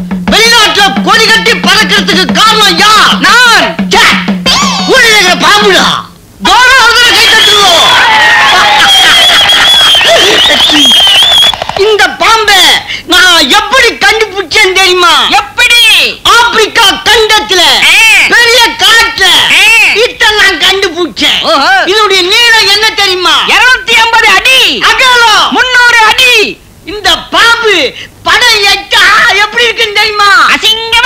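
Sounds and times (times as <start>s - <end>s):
person speaking loudly: 0.3s - 31.0s
person giving wailing cries: 4.0s - 5.9s
crowd clapping quickly: 8.5s - 11.8s.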